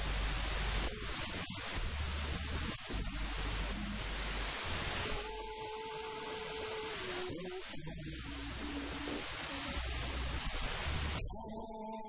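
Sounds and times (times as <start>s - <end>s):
steady hiss and low hum: 0.0s - 11.3s.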